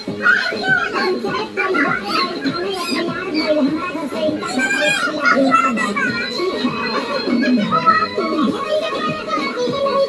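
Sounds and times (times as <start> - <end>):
music playing: 0.0 - 10.0
women and children talking: 0.0 - 10.0.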